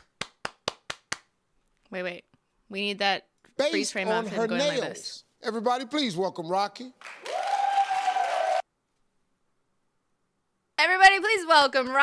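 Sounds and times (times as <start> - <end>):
audience applauding and cheering: 7.0 - 8.7.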